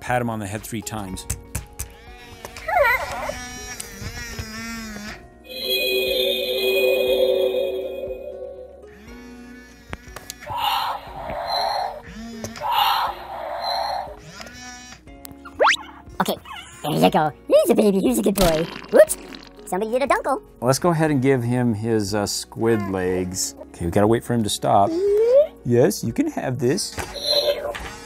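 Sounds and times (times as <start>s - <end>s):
background music: 0.0s - 4.0s, 5.1s - 28.0s
long held electronic tone: 5.5s - 9.2s.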